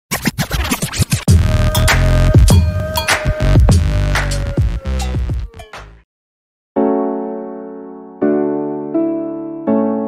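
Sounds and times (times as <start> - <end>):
stuttering scratch-like hits: 0.1 - 2.4
heavy bass: 1.3 - 6.0
held synth tone: 1.3 - 6.0.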